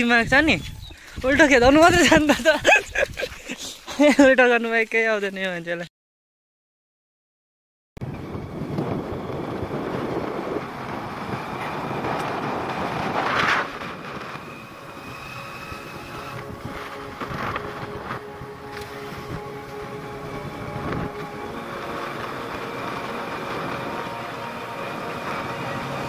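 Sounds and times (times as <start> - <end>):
wind rushing over microphone: 0.0 - 3.4, 8.0 - 26.0
motorcycle engine running: 8.0 - 26.0.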